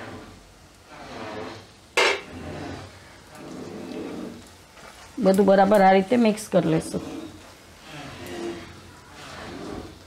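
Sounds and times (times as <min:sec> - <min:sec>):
food sizzling in oil: 0:00.0 - 0:10.0
utensil knocking on wok: 0:02.0 - 0:02.3.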